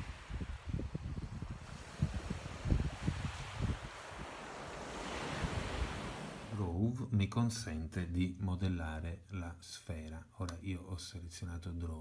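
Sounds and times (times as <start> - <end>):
wind buffeting microphone: 0.0 - 6.6
sea surf: 0.0 - 6.7.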